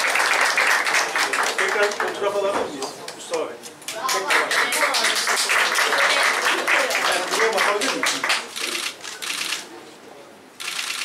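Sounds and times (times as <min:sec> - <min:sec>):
camera shutter bursts: 0:08.6 - 0:09.7, 0:10.6 - 0:11.0.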